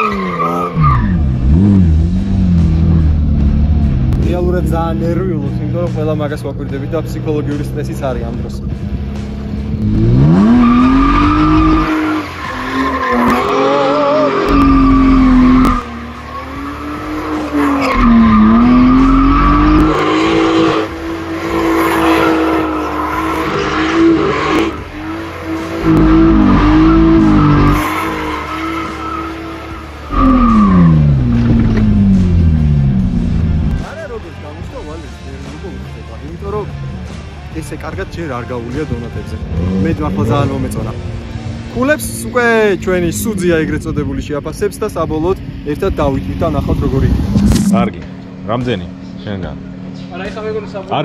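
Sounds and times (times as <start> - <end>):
car engine revving high: 0.0 - 5.2, 9.0 - 33.8, 46.2 - 50.8
tyres squealing: 10.0 - 32.1.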